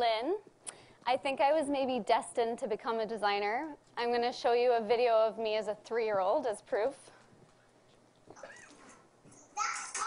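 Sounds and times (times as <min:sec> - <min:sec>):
small child speaking: 0:09.5 - 0:10.0.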